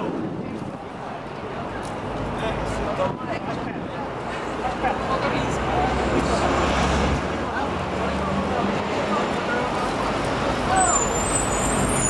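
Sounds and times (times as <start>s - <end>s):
people talking: 0.0s - 12.0s
street traffic: 0.0s - 12.0s
high thin squeal: 10.8s - 12.0s.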